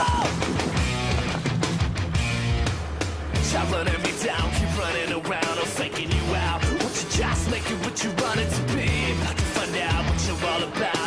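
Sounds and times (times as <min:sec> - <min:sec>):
instrumental rock music: 0:00.0 - 0:11.0.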